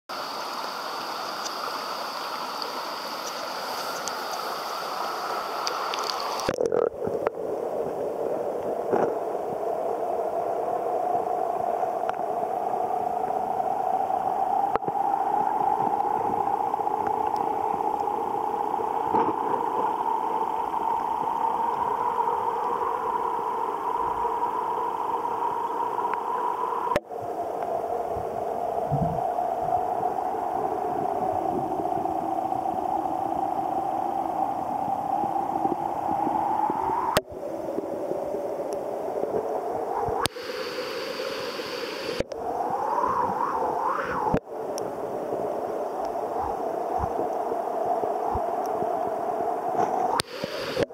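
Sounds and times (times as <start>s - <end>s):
muffled underwater river drone: 0.1s - 50.9s.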